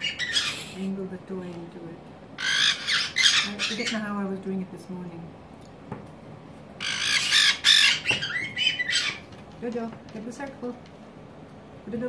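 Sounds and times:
parrot squawking harshly: 0:00.0 - 0:00.8, 0:02.4 - 0:04.1, 0:06.8 - 0:09.3.

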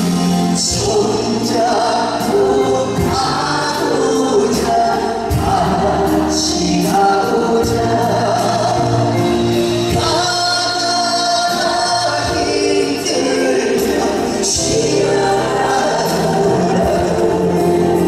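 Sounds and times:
keyboard: 0:00.0 - 0:18.0
man singing a ballad: 0:00.0 - 0:18.0.

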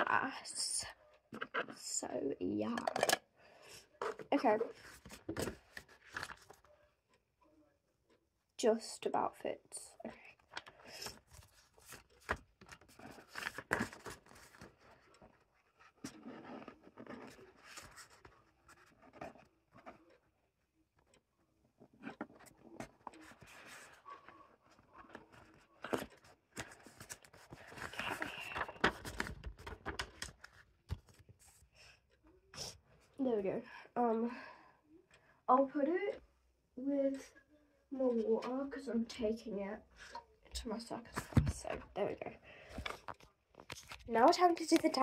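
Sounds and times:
paper rustling and scraping: 0:04.0 - 0:06.6, 0:10.9 - 0:20.0, 0:22.0 - 0:31.6.

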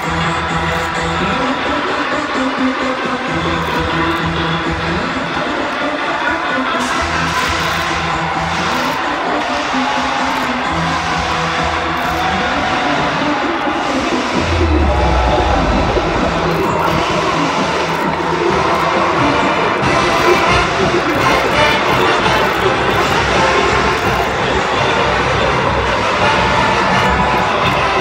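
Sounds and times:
music over stadium loudspeakers: 0:00.0 - 0:28.0
deep rumble: 0:14.3 - 0:19.3.

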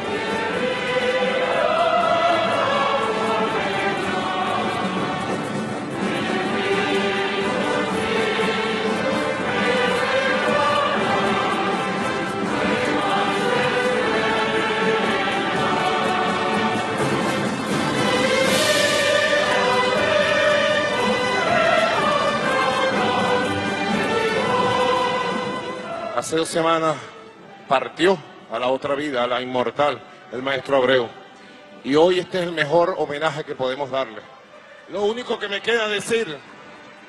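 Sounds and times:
orchestra and choir performing: 0:00.0 - 0:37.0.

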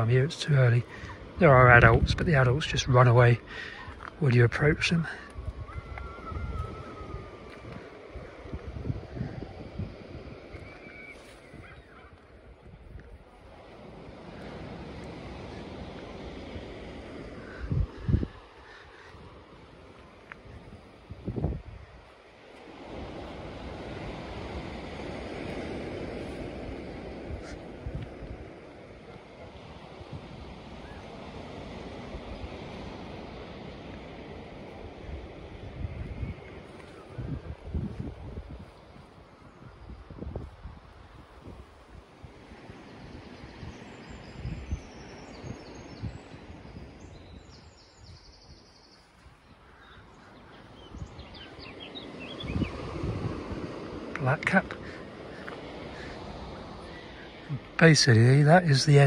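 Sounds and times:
surf washing: 0:00.0 - 0:59.0
wind on microphone: 0:00.7 - 0:57.9.

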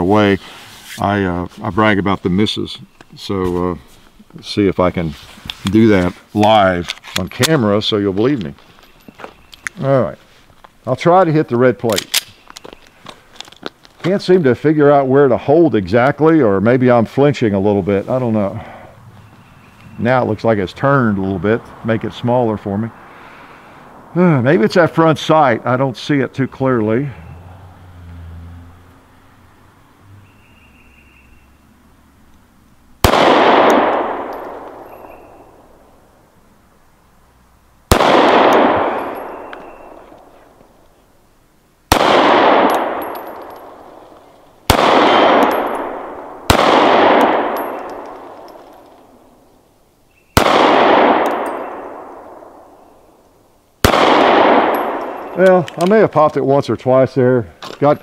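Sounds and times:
pistol shots with echo: 0:33.0 - 0:35.6, 0:37.9 - 0:40.2, 0:41.9 - 0:43.8, 0:44.7 - 0:48.7, 0:50.4 - 0:52.9, 0:53.8 - 0:55.4.

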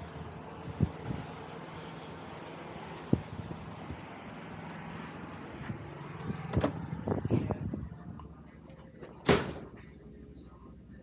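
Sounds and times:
outdoor hum: 0:00.0 - 0:11.0.

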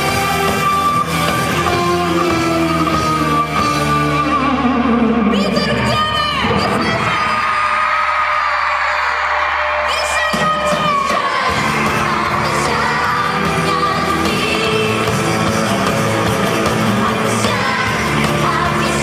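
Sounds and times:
live pop-rock band: 0:00.0 - 0:08.4, 0:09.8 - 0:19.0.

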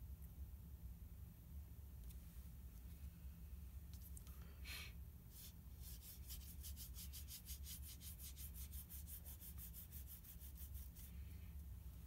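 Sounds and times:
swab scrubbing paper card: 0:05.3 - 0:11.2.

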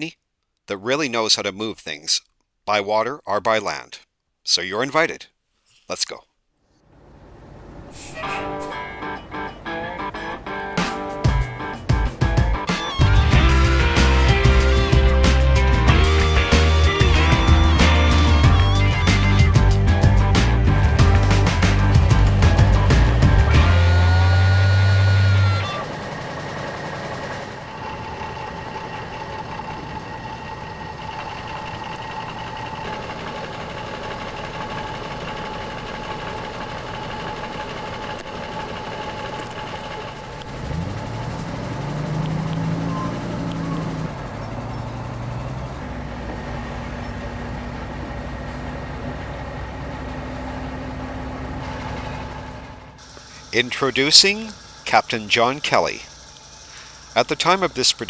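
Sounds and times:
heavy truck engine revving: 0:06.9 - 0:58.0
music: 0:08.3 - 0:25.8
faint high whine: 0:53.0 - 0:58.0.

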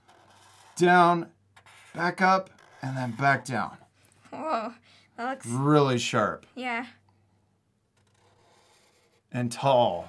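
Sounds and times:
marker drawing on paper: 0:00.0 - 0:04.2, 0:08.0 - 0:09.4.

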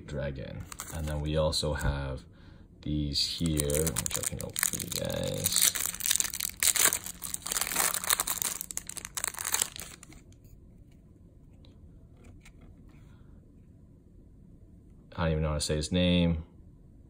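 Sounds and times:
plastic wrapping crinkling and tearing: 0:00.7 - 0:01.2, 0:03.3 - 0:10.3.

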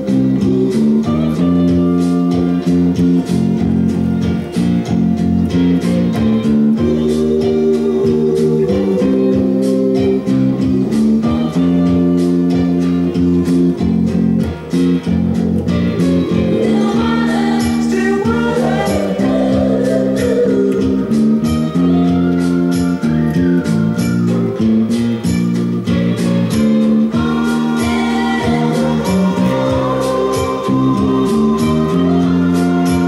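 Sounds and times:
electric bass line: 0:00.0 - 0:33.0
soul recording with guitar and band: 0:00.0 - 0:33.0.

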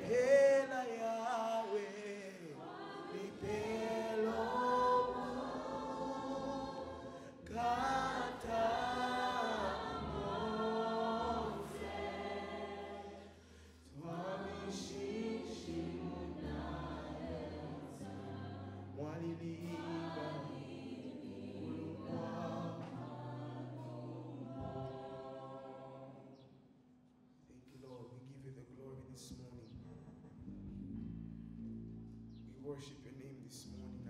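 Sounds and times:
man singing into microphone: 0:00.0 - 0:02.6, 0:07.4 - 0:09.8
lead singer singing: 0:00.0 - 0:13.0, 0:14.0 - 0:25.1
choir singing: 0:00.0 - 0:26.6.

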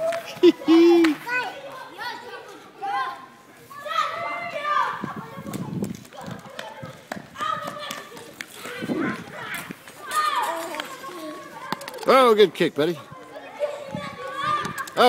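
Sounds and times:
children calling and chattering: 0:00.0 - 0:15.0.

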